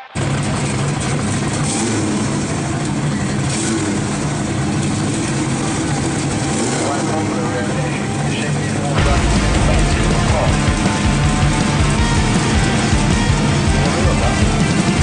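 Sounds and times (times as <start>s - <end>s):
car engine idling: 0.0s - 15.0s
background voices: 5.5s - 11.2s.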